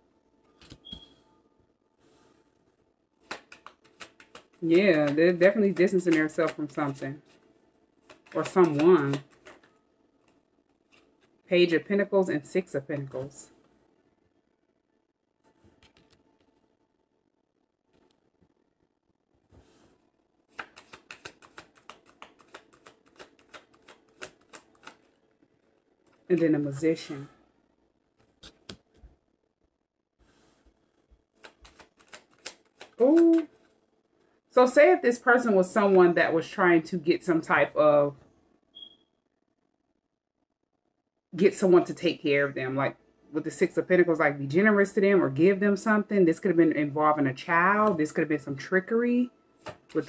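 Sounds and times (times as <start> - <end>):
cards clicking in hands: 3.2 - 7.0, 8.0 - 9.7, 20.5 - 25.2, 28.2 - 29.0, 31.4 - 33.6, 49.6 - 50.0.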